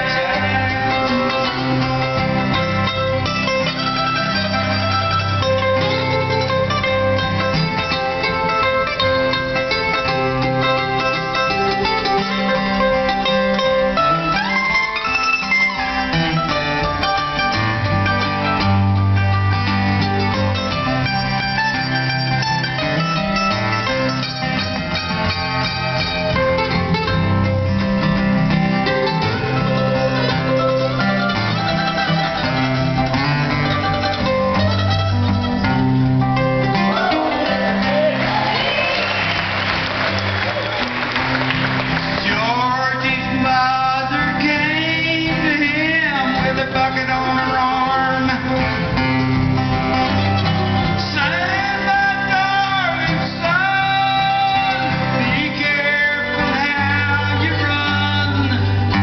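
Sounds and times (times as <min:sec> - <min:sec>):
acoustic guitar strumming: 0:00.0 - 0:59.0
mandolin picking: 0:00.0 - 0:59.0.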